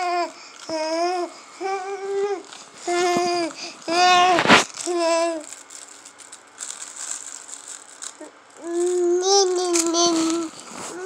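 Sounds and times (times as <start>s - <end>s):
soft rustling: 1.8s - 11.0s.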